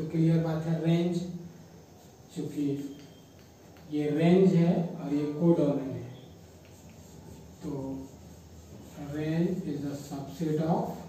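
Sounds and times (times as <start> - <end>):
low room hum: 0.0 - 11.0
chalk scratching on blackboard: 1.8 - 11.0
man speaking: 3.9 - 6.3, 7.6 - 8.2, 8.9 - 11.0.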